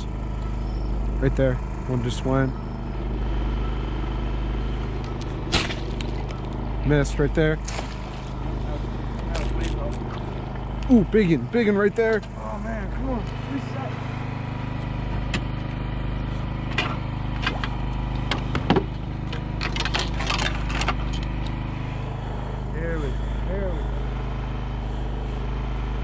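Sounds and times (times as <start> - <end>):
small engine running: 0.0 - 26.0.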